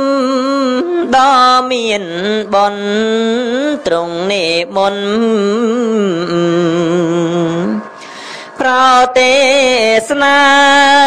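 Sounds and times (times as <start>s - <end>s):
man chanting: 0.0s - 8.0s, 8.6s - 11.0s.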